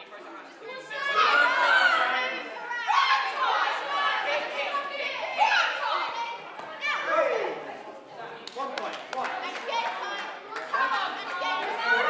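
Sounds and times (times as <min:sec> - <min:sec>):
children shouting: 0:00.8 - 0:07.5.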